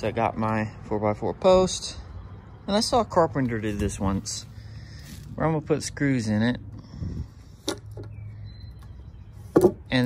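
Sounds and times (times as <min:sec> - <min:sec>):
wooden post knocking on concrete: 0:09.5 - 0:09.9.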